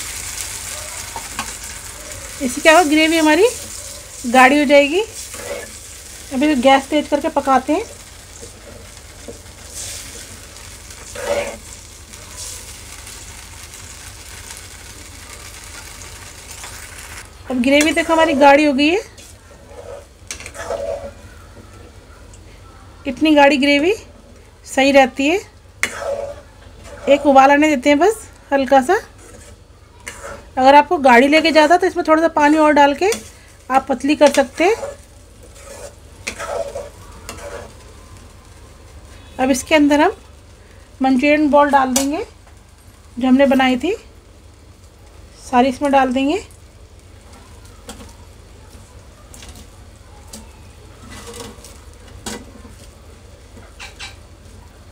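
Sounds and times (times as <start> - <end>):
gravy sizzling and bubbling: 0.0 - 54.9
spoon stirring in a pan: 0.1 - 22.4, 25.8 - 27.8, 28.8 - 30.6, 31.3 - 39.3, 51.0 - 54.3
spoon stirring thick gravy: 19.0 - 21.4, 25.8 - 27.5, 29.1 - 30.6, 34.2 - 38.0.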